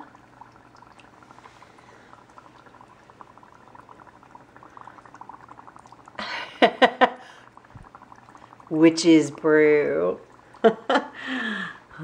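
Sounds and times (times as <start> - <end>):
dry ice bubbling in water: 0.0 - 12.0.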